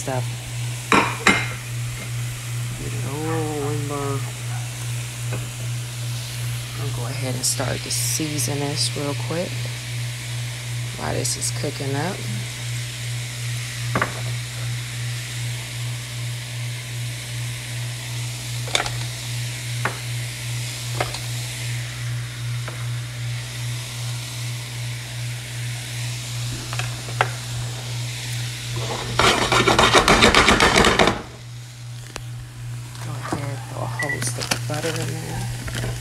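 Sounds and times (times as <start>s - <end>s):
low pulsing hum: 0.0s - 36.0s
vegetables sizzling in a pan: 0.0s - 36.0s.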